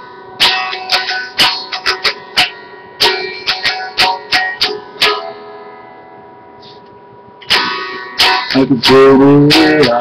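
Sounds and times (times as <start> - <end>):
electric guitar chord ringing: 0.0 - 10.0.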